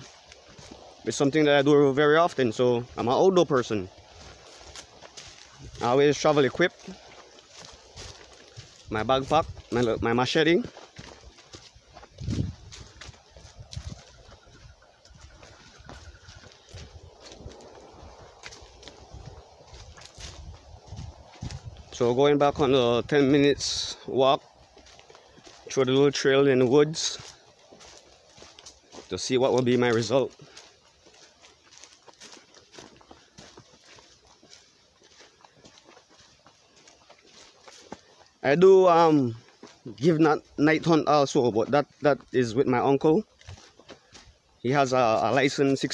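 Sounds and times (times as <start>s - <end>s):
footsteps on dry leaves: 0.0s - 45.9s.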